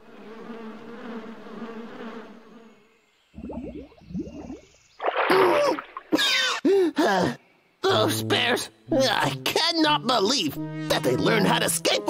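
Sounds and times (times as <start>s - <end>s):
fly buzzing: 0.0s - 3.3s.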